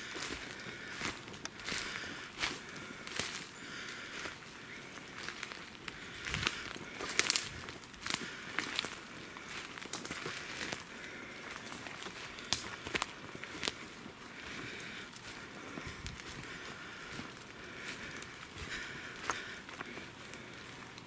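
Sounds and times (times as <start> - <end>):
footsteps crunching dry leaves: 0.0 - 21.0.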